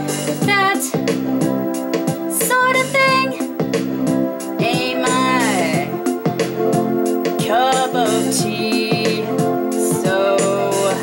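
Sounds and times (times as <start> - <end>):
woman singing: 0.0 - 1.1, 2.3 - 3.5, 4.6 - 6.0, 7.4 - 11.0
sustained backing music: 0.0 - 11.0.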